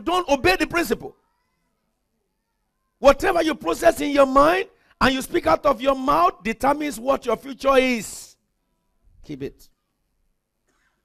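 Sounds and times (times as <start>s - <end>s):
man speaking: 0.0s - 1.1s, 3.0s - 8.4s, 9.2s - 9.7s.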